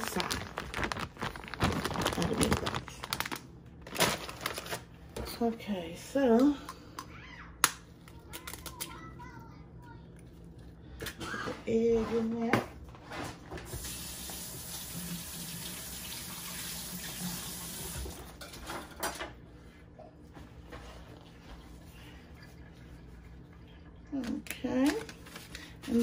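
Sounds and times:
handling sounds: 0.0 - 4.8
kitchen tap running: 13.7 - 18.4.

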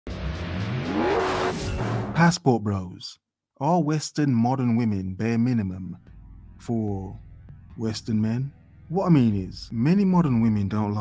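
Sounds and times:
car accelerating: 0.1 - 2.2.

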